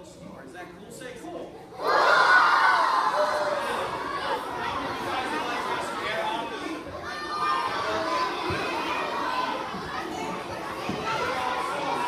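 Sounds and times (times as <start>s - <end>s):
children talking and calling out: 1.5s - 12.0s.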